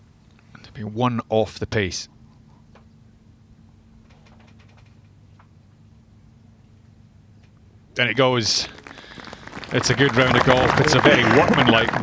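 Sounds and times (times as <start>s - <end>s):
faint steady low hum: 0.0s - 12.0s.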